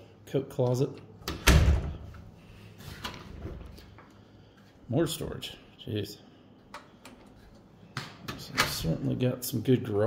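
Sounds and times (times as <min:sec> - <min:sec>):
wooden door thudding shut: 0:01.3 - 0:02.0.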